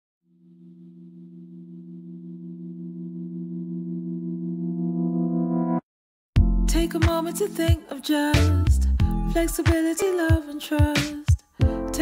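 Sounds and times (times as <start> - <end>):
sustained synthesizer chord: 0.3 - 5.8.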